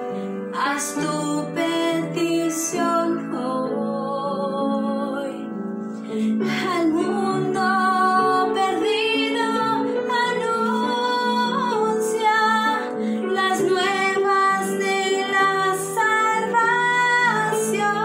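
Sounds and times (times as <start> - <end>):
woman singing a hymn: 0.5 - 5.6, 6.2 - 18.0.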